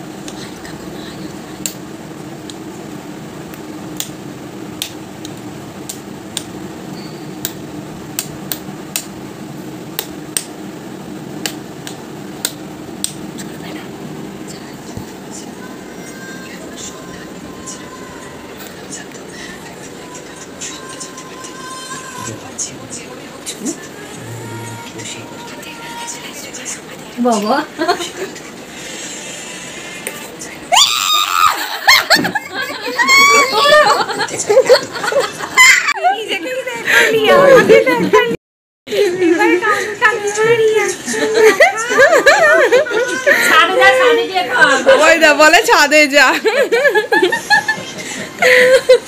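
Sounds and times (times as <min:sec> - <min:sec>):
steady low hum: 0:00.0 - 0:49.0
person screaming: 0:30.7 - 0:31.7, 0:32.9 - 0:33.9.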